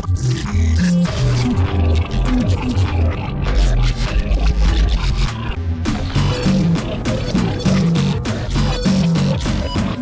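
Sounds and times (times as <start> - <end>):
deep bass line: 0.0 - 10.0
electronic music: 0.0 - 10.0.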